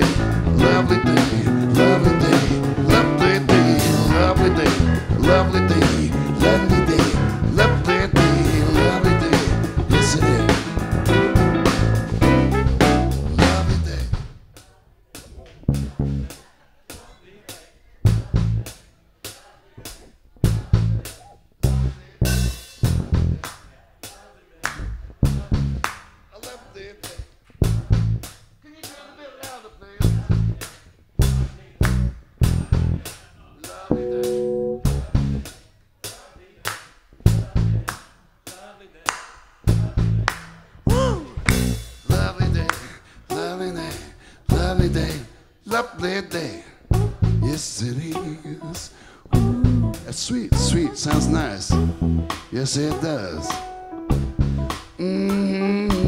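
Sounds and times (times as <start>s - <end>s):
short bass guitar notes: 0.0s - 14.1s, 15.6s - 16.3s, 33.9s - 35.4s, 39.7s - 42.7s, 46.9s - 47.6s, 48.6s - 54.9s
funk band playing: 0.0s - 14.5s, 15.2s - 16.4s, 19.9s - 23.5s, 24.8s - 26.0s, 30.0s - 35.6s, 39.7s - 56.0s
electric guitar: 33.9s - 35.0s, 48.2s - 56.0s.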